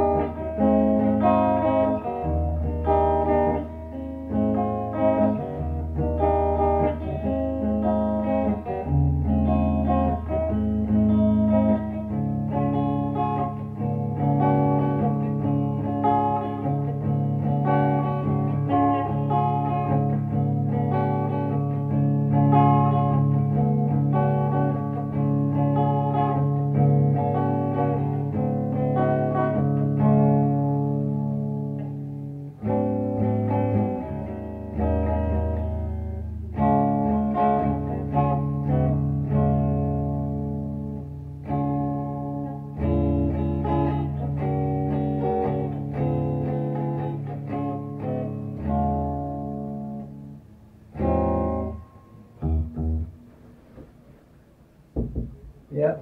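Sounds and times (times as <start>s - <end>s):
guitars playing ringing chords: 0.0s - 55.7s.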